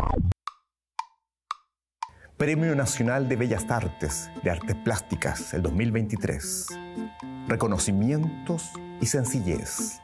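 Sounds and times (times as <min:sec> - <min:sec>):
music: 0:02.4 - 0:10.0.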